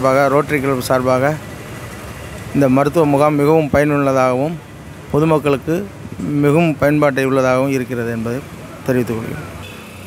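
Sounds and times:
man speaking into a microphone: 0.0 - 1.4, 2.5 - 9.6.

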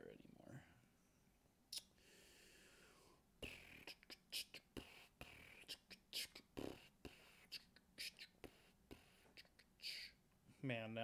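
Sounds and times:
faint whispering: 3.0 - 10.2.

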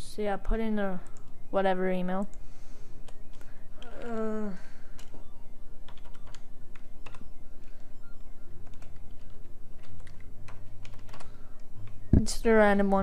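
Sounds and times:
computer keyboard typing: 0.5 - 13.0.

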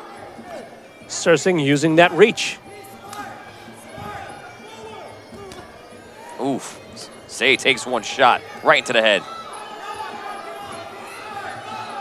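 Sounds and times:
crowd voices and chatter: 0.0 - 12.0.

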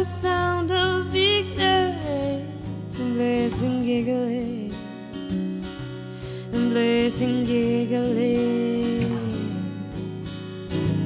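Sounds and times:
woman singing: 0.0 - 5.6, 6.2 - 10.2
acoustic guitar strumming: 0.0 - 11.0.

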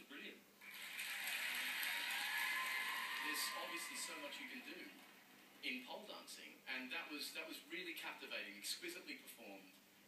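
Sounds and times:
studio audience applause: 0.6 - 5.4.

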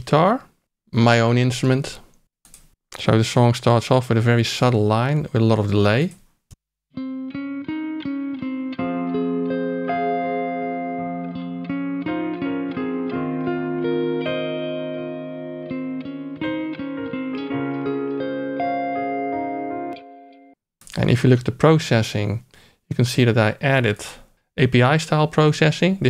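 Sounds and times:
electric guitar with delay: 7.0 - 20.6.

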